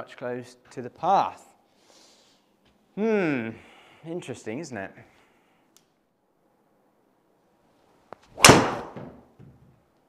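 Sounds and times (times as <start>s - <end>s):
golf club striking ball: 8.4s - 9.1s.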